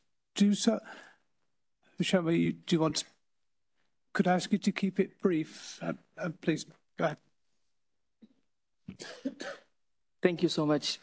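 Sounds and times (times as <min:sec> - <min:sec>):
person clearing throat and coughing: 0:08.2 - 0:09.8.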